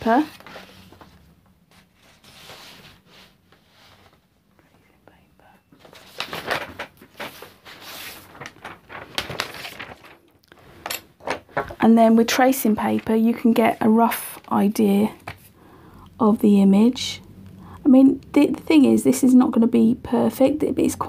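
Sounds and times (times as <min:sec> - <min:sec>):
paper rustling: 0:00.0 - 0:04.3, 0:05.8 - 0:11.8, 0:12.4 - 0:15.5.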